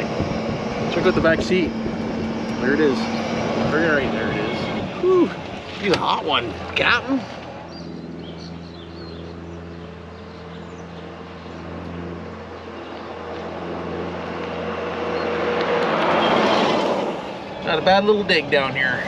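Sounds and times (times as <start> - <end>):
electric cart motor hum: 0.0 - 19.0
tyre and road noise: 0.0 - 19.0.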